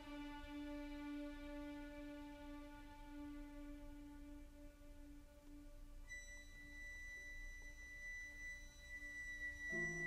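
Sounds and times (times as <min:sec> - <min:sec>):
quiet orchestral music: 0:00.0 - 0:10.0
high sustained note: 0:06.0 - 0:10.0.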